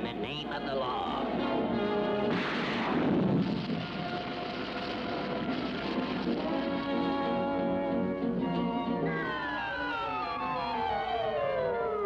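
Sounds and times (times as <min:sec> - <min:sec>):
cartoon orchestral music: 0:01.2 - 0:02.4, 0:04.2 - 0:12.0
loud blast sound effect: 0:02.3 - 0:07.0.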